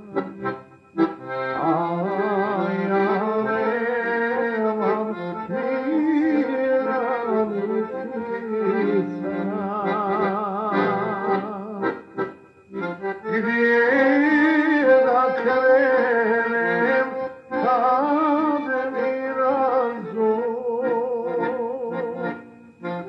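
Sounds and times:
folk song with accordion: 0.0s - 23.0s.

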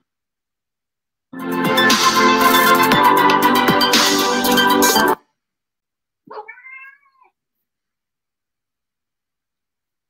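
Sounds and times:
electronic music: 1.4s - 5.2s
cat meowing: 6.3s - 7.4s.

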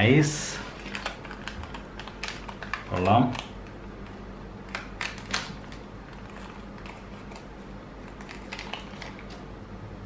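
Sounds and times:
low electrical hum: 0.0s - 10.0s
plastic bag crinkling: 0.6s - 3.8s, 4.7s - 9.5s.

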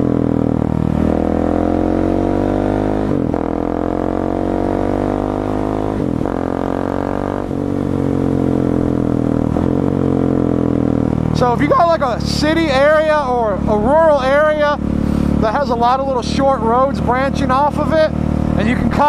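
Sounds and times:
motorcycle engine accelerating: 0.0s - 19.0s.

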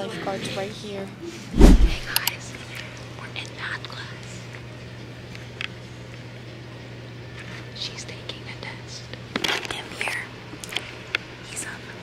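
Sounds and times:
steady low hum: 0.8s - 12.0s
soft whispering and low voices: 2.1s - 4.6s, 7.8s - 9.1s, 11.4s - 12.0s.

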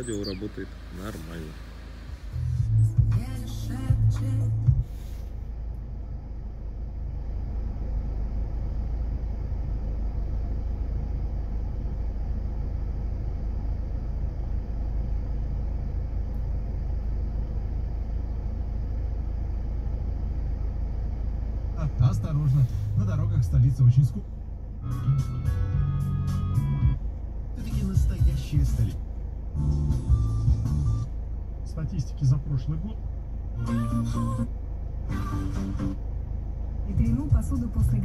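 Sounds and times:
car radio broadcast: 0.0s - 5.3s, 21.4s - 25.6s, 26.2s - 38.0s
low rumble in car cabin: 0.0s - 38.0s.

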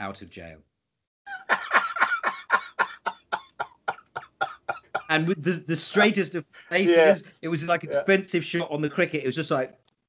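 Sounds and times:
man laughing: 1.3s - 5.3s.

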